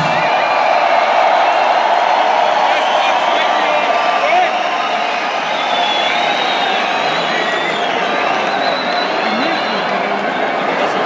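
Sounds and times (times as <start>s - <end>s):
arena crowd cheering and shouting: 0.0s - 11.0s.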